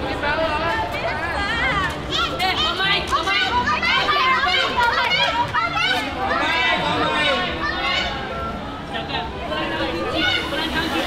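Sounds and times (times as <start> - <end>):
young people talking and calling out: 0.0 - 11.0.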